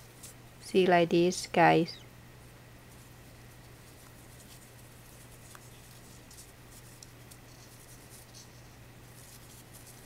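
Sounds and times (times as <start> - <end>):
steady low hum: 0.0 - 10.0
ribbon rustling: 2.9 - 10.0.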